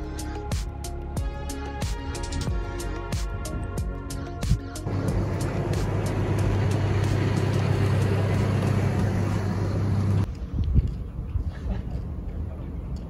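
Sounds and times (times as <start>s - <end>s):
background music: 0.0s - 10.3s
truck engine low drone: 0.0s - 11.2s.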